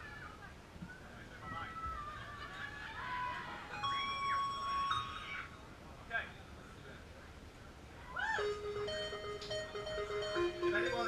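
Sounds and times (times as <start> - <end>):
synthesizer notes: 8.4 - 11.0.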